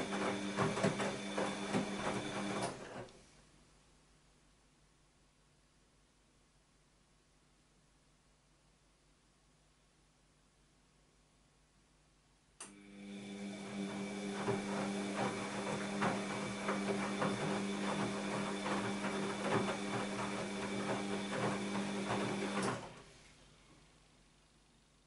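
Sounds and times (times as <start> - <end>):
washing machine motor hum and whine: 0.0 - 3.0, 12.7 - 23.2.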